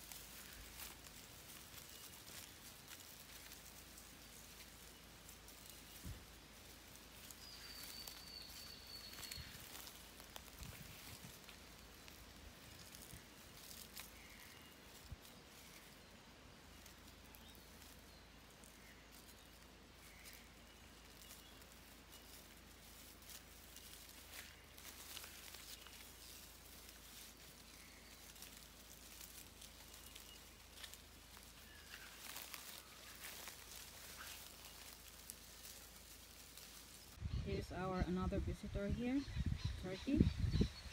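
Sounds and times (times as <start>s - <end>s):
rustles in dry leaf litter: 0.0s - 40.9s
thin high animal call: 22.2s - 37.5s.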